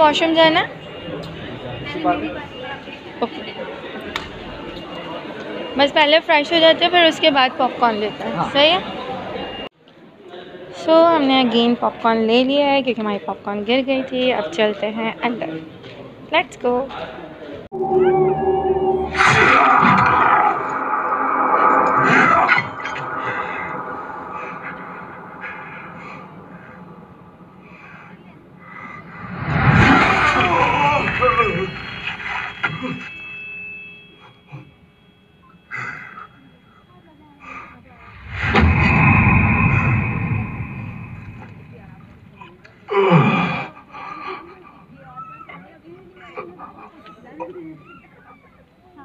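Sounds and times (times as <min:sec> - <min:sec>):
loud soundtrack hit: 0:17.7 - 0:32.6, 0:38.0 - 0:42.6
film background score: 0:17.7 - 0:32.9
film dialogue: 0:17.7 - 0:33.3, 0:38.0 - 0:42.6.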